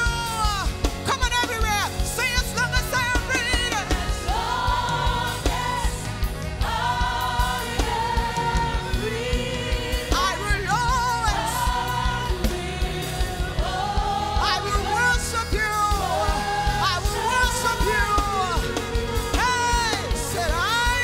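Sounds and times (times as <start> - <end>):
band playing steady beat: 0.0 - 21.0
women and choir singing: 3.8 - 18.1.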